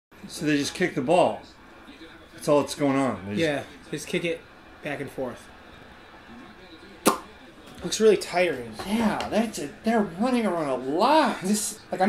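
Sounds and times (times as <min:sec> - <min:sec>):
faint voices: 0:01.4 - 0:12.0.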